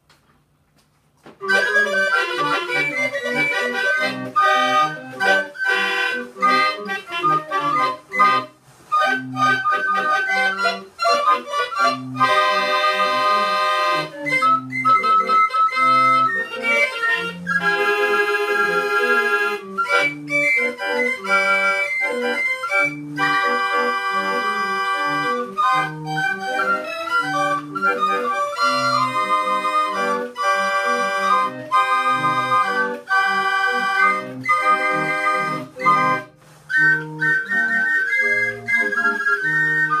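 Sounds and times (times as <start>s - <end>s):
pipe organ playing a tune: 1.4s - 40.0s.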